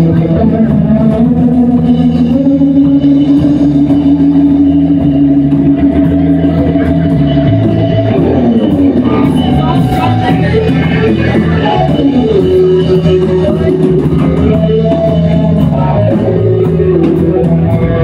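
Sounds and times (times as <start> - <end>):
bass guitar: 0.0 - 18.0
drums: 0.0 - 18.0
electric guitar: 0.0 - 18.0.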